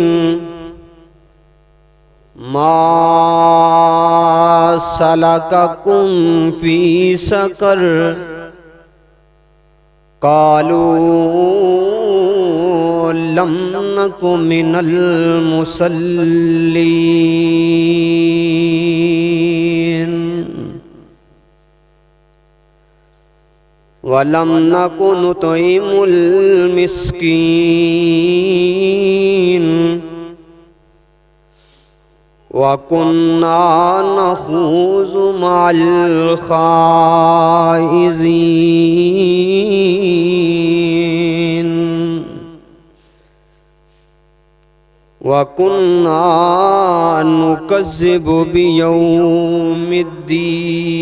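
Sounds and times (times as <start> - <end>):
man reciting melodically over microphone: 0.0 - 1.2, 2.3 - 9.1, 10.2 - 21.3, 24.0 - 30.8, 32.4 - 43.2, 45.2 - 51.0
faint mains hum: 0.0 - 51.0
breath: 31.5 - 32.1, 42.9 - 44.2.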